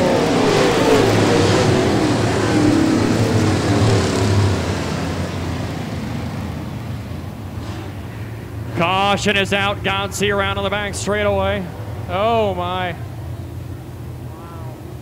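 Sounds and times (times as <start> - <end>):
race car engines slowing: 0.0 - 15.0.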